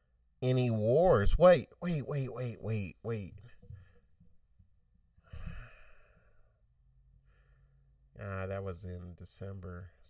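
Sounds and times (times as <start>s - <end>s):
man sighing: 5.3s - 6.1s.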